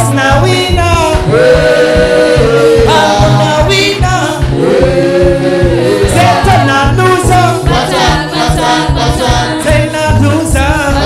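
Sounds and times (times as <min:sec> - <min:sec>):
man singing gospel into microphone: 0:00.0 - 0:11.0
steady low beat: 0:00.0 - 0:11.0.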